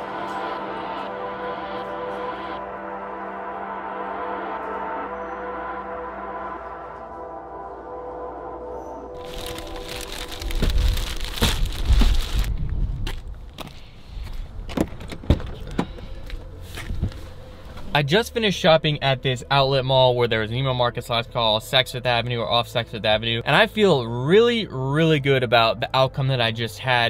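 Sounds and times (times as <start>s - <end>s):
soft ambient music: 0.0s - 12.5s, 15.4s - 27.0s
plastic bag rustling: 9.2s - 12.6s.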